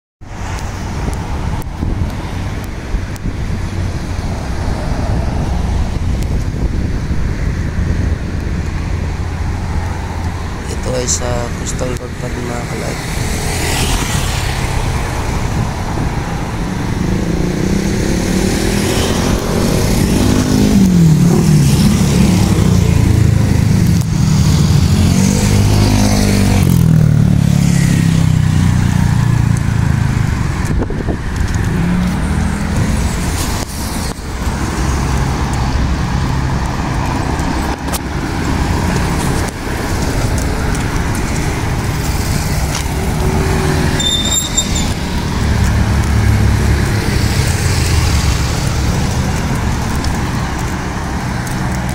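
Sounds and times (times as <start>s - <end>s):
road traffic noise: 0.2s - 51.9s.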